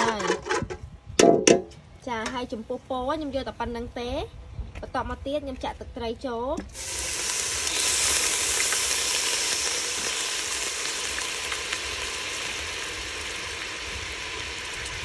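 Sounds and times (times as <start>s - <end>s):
food sizzling in a pot: 6.7s - 15.0s.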